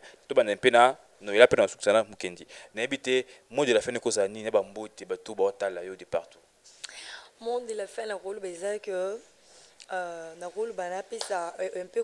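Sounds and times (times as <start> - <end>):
person talking: 9.9 - 12.0.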